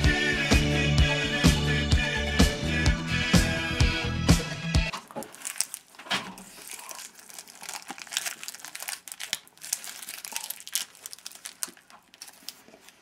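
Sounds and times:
paper crumpling: 4.9s - 13.0s.

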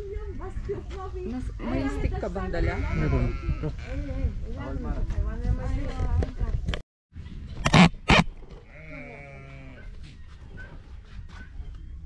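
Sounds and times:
sheep bleating: 2.6s - 4.2s, 7.7s - 9.8s.

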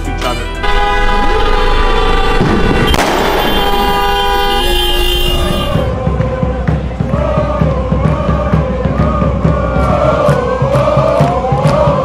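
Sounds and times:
car horns honking: 0.6s - 5.9s.

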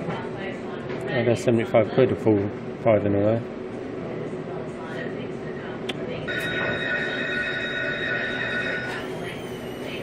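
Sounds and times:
slot machine electronic chord: 6.3s - 9.0s
falling ringing tone: 6.3s - 9.8s.

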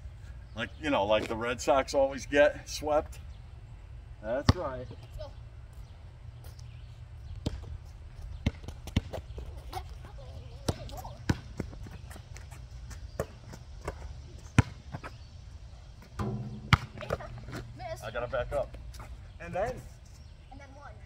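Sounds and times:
basketball bouncing on asphalt: 4.4s - 5.2s, 7.3s - 15.4s, 16.0s - 19.2s
steady low rumble: 15.4s - 19.4s.

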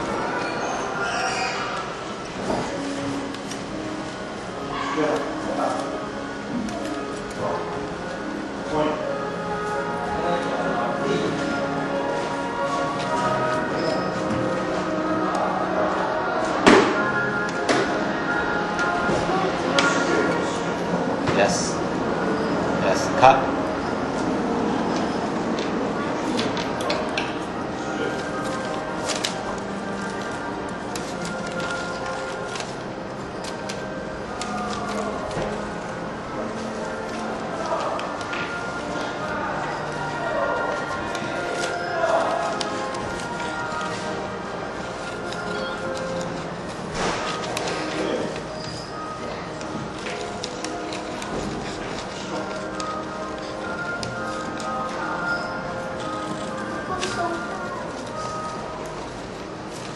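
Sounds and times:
music with voices: 0.0s - 59.9s.

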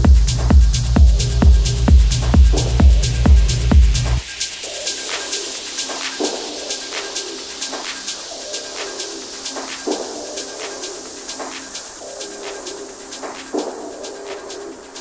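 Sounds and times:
kick drum: 0.0s - 4.2s
offbeat hi-hats ticking: 0.0s - 15.0s.

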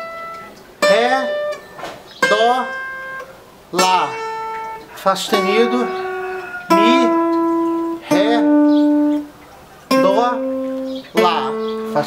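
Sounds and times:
guitar playing single notes: 0.0s - 12.0s.

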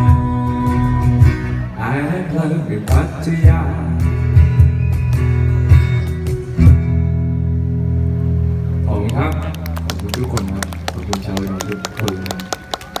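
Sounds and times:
applause hand claps: 9.1s - 13.0s.

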